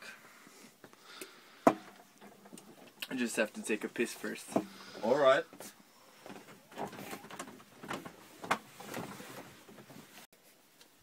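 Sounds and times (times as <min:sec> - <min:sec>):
rustling: 0:01.7 - 0:11.0.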